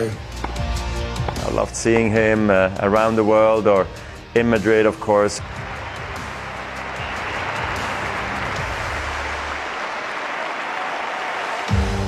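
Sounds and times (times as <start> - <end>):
background music: 0.0 - 12.0
crowd applause: 5.2 - 12.0.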